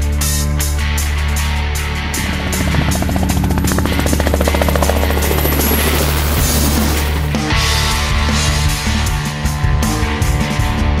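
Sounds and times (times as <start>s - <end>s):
rock music: 0.0s - 11.0s
helicopter rotor beating: 0.9s - 8.3s.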